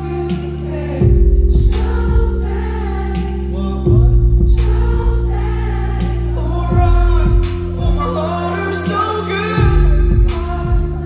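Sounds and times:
man singing: 0:00.0 - 0:02.4, 0:03.5 - 0:05.3, 0:06.3 - 0:11.0
deep bass line: 0:00.0 - 0:11.0
drum hits: 0:06.7 - 0:08.0.

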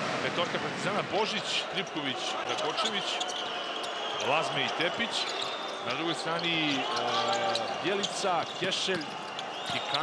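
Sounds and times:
large crowd noise: 0:00.0 - 0:10.0.

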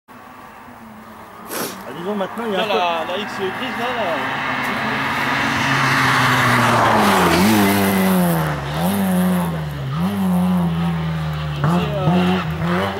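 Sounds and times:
rushing noise of car approaching: 0:00.1 - 0:12.9
rally car engine revving: 0:01.6 - 0:12.9.

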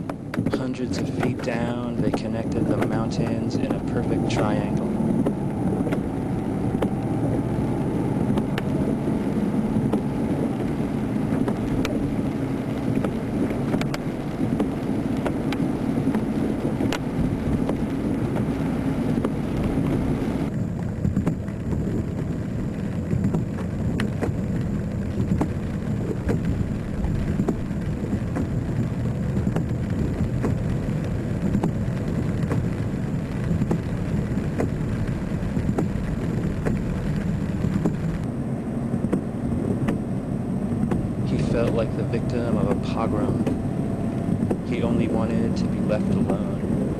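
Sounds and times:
steady low rumble: 0:00.0 - 0:46.9
faint crackling ticks: 0:09.9 - 0:18.5, 0:19.2 - 0:38.3.

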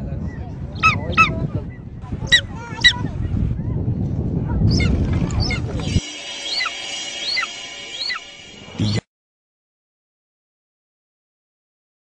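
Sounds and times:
screeching bird call: 0:04.7 - 0:09.0
short high falling calls: 0:04.7 - 0:09.0
music with held tones: 0:05.8 - 0:09.0.

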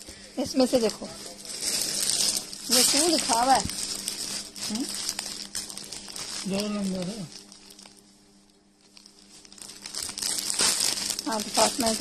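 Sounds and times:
plastic packaging crinkling: 0:00.5 - 0:12.0.

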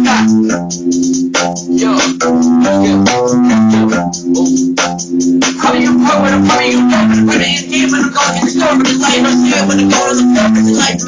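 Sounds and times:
instrumental hip-hop beat: 0:00.0 - 0:11.0.

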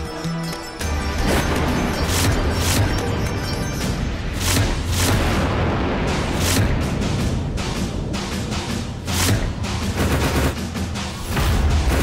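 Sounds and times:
low sustained dramatic music: 0:00.0 - 0:12.0.

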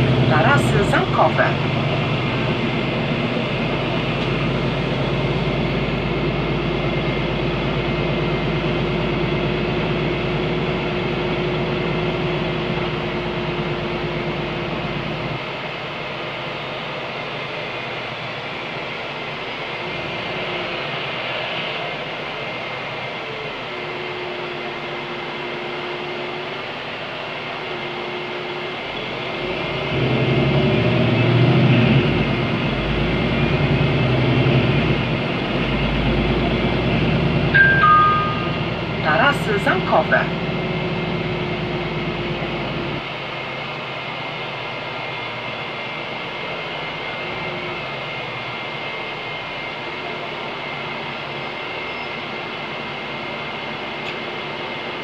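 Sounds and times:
bus diesel engine humming: 0:00.0 - 0:55.0.

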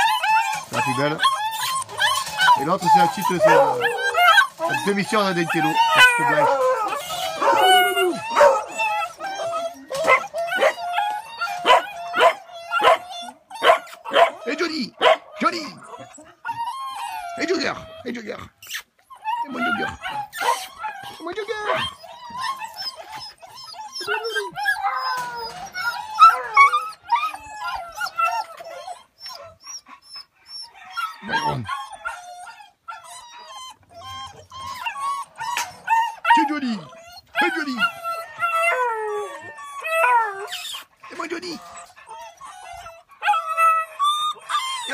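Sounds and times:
dogs baying and yelping: 0:00.0 - 0:44.9.

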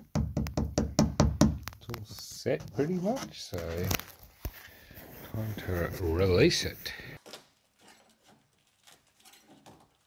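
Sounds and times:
fingertip tapping on fibreglass: 0:00.0 - 0:01.8.

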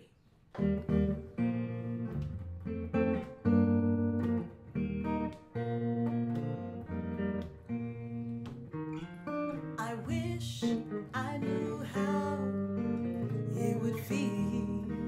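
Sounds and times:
guitar chords strummed and ringing: 0:00.5 - 0:15.0.

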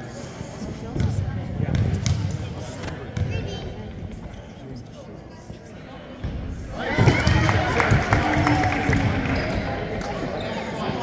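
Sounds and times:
echoing voices: 0:00.0 - 0:11.0
sneaker squeak: 0:09.3 - 0:11.0.

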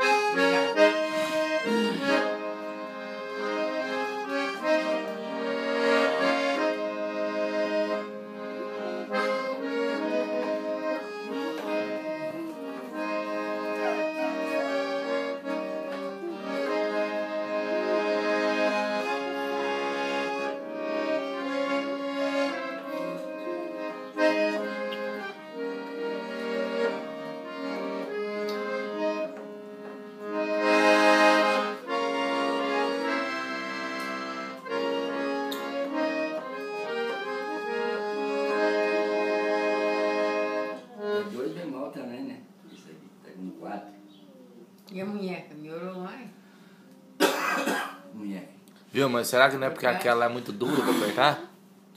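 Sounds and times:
accordion melody: 0:00.0 - 0:42.9, 0:43.6 - 0:51.9.

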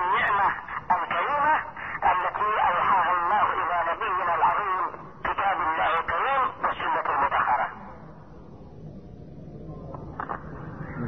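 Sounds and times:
man talking over telephone: 0:00.0 - 0:07.8.

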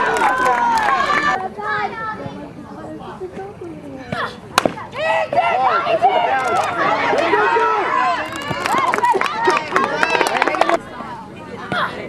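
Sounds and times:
people chattering and calling out: 0:00.0 - 0:12.0
bat hitting softball: 0:04.5 - 0:04.9.

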